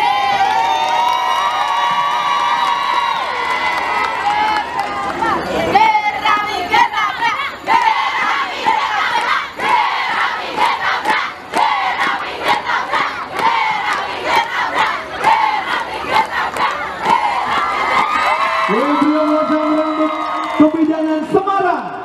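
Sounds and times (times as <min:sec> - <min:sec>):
crowd: 0:00.0 - 0:22.0
women shouting a cheer chant: 0:04.2 - 0:18.8.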